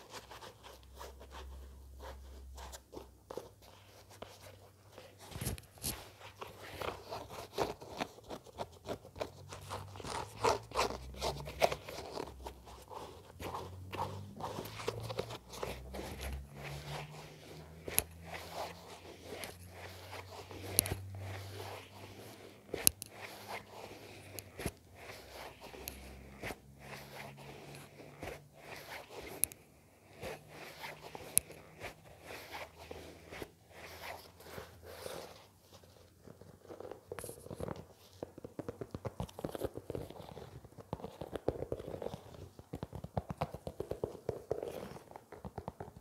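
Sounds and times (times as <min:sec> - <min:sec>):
fiddling with shoelaces: 0:00.0 - 0:46.0
fingers scratching sneaker: 0:00.0 - 0:46.0.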